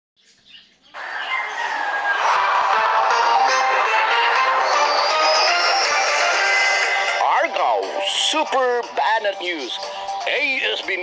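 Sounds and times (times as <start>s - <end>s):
bird calls: 0.2s - 2.4s.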